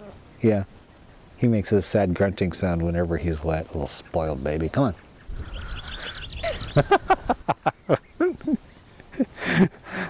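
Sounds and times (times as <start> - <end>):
faint high chirps: 5.2 - 9.4.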